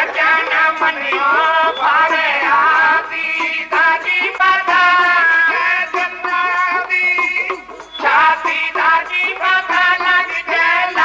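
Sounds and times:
people singing: 0.0 - 11.0.

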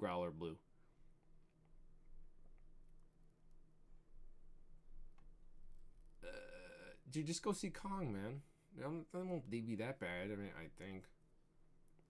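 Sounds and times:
man burping: 6.2 - 7.1.

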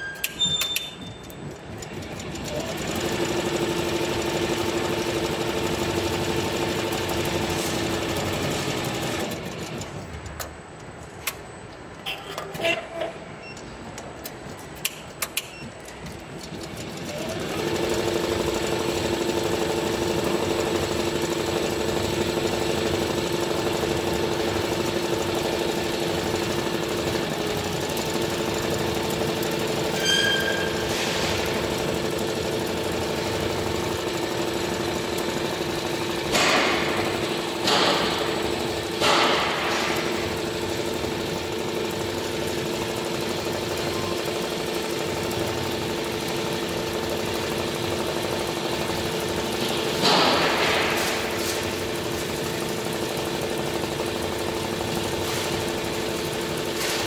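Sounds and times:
embroidery machine rattling: 0.3 - 10.4, 14.5 - 57.0.

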